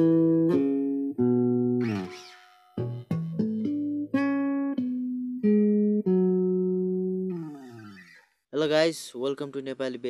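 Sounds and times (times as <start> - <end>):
electric bass guitar notes: 0.0 - 2.2, 2.8 - 8.1.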